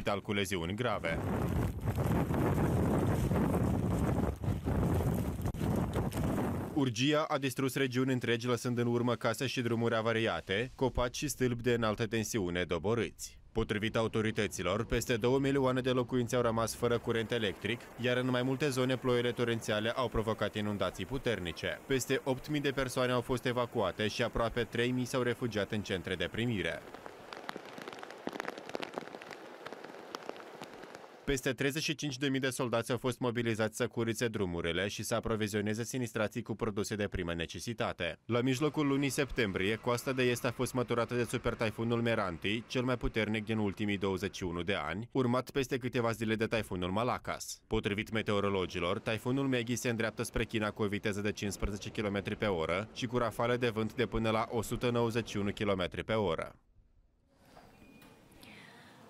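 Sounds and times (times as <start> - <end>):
strong wind buffeting microphone: 1.0 - 6.8
heavy rain pouring on street: 16.9 - 31.2.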